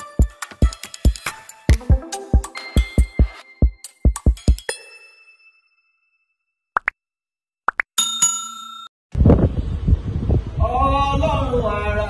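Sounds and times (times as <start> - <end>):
bell-like ding: 4.6 - 6.3, 8.0 - 8.9.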